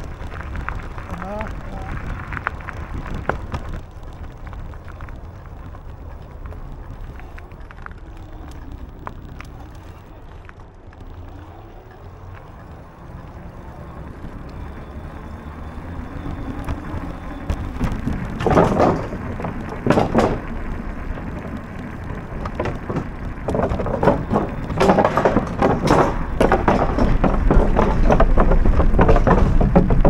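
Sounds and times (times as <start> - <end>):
bicycle tyres rumbling: 0.0 - 30.0.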